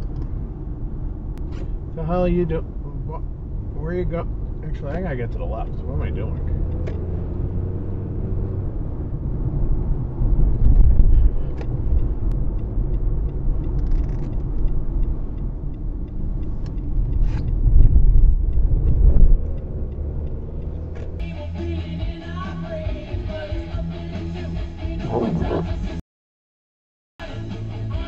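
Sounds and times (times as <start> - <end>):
tyres on road: 0.0 - 24.3
car engine rumble: 0.0 - 26.0
music: 21.2 - 26.0, 27.2 - 28.0.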